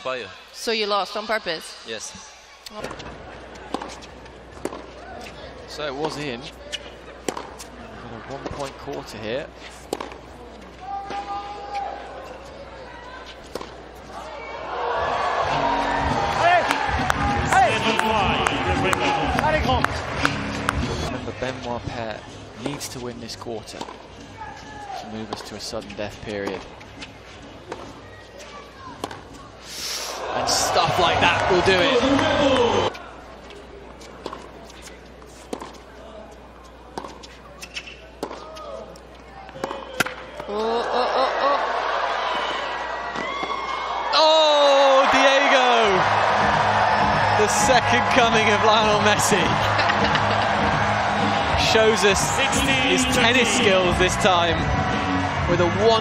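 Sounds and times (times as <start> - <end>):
crowd voices: 0.0 - 56.0
low arena hum: 2.8 - 56.0
tennis ball struck by racquet: 4.6 - 4.9, 7.2 - 7.7, 9.9 - 10.2, 29.0 - 29.2
tennis ball bouncing on hard court: 4.6 - 5.3, 7.2 - 7.7, 9.9 - 10.2, 16.0 - 21.0, 29.0 - 29.4, 35.5 - 35.8, 37.0 - 38.5
loud music: 45.9 - 56.0.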